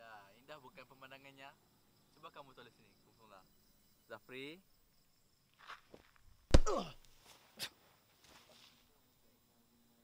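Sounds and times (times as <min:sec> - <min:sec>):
sharp thump: 0:06.5 - 0:06.9.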